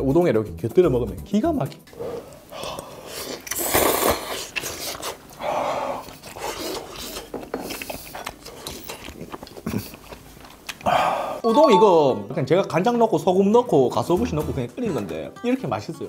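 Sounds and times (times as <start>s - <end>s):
man chewing: 1.9s - 11.4s
man slurping noodles: 2.0s - 7.3s.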